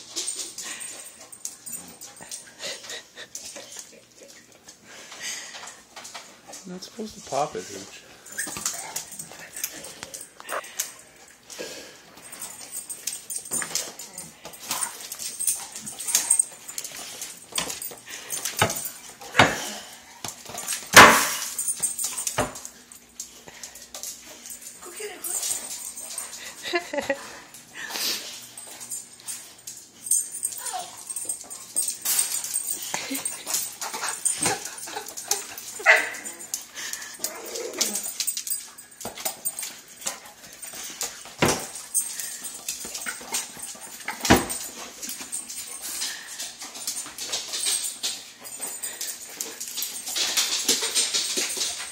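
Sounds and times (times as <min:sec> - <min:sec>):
paws clicking on tile floor: 0:00.0 - 0:51.9
dogs whining: 0:08.2 - 0:10.7, 0:29.8 - 0:39.6
ball on tile floor: 0:27.8 - 0:51.9.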